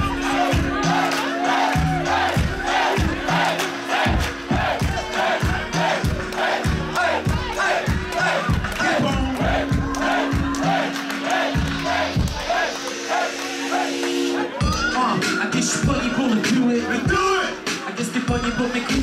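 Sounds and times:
crowd shouting: 0.0 - 14.8
hip-hop beat with bass line: 0.0 - 19.0.

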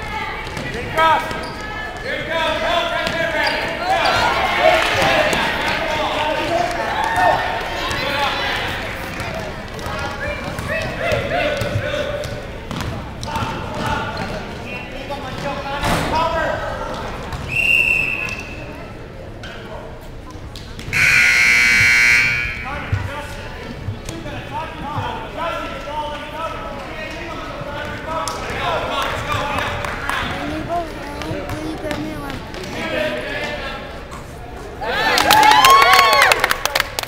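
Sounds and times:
basketball bouncing: 9.2 - 14.3
voices: 20.5 - 35.3
referee's whistle blast: 21.0 - 22.7
scoreboard buzzer: 21.0 - 22.7.

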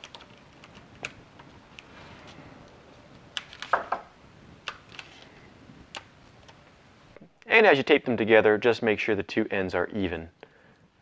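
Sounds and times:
tape crinkling: 0.0 - 4.0, 4.6 - 6.7
tape clicks and ticks: 5.9 - 6.7.

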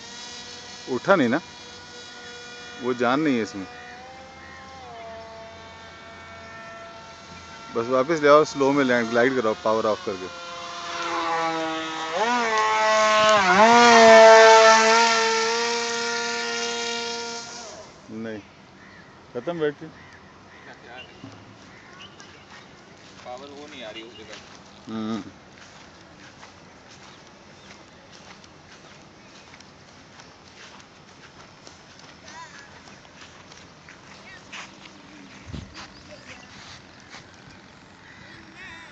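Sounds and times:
electric motor and propeller whining: 0.0 - 38.9
outdoor background noise: 0.0 - 38.9
footsteps through grass: 20.0 - 38.9.

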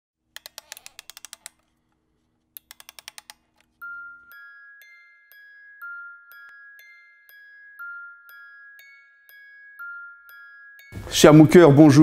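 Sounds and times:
keyboard typing: 0.4 - 1.9, 2.6 - 4.4
bell-like chime note: 3.8 - 12.0.

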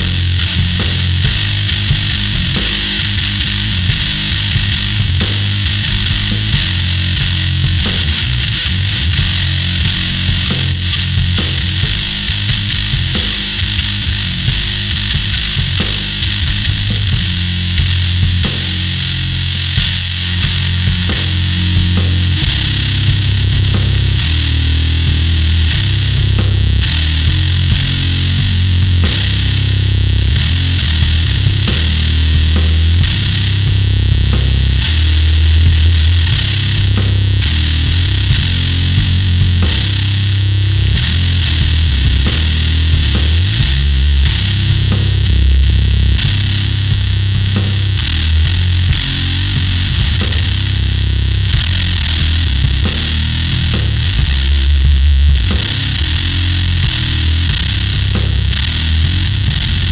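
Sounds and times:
fuzz bass riff: 0.0 - 59.9.

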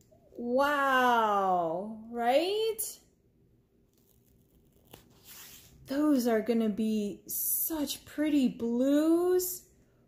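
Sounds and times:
plastic film crinkling: 3.8 - 5.7.

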